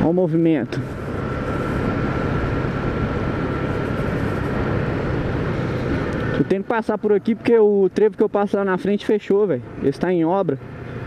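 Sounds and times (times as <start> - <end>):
motorcycle engine cruising: 0.0 - 11.0
road noise: 0.0 - 11.0.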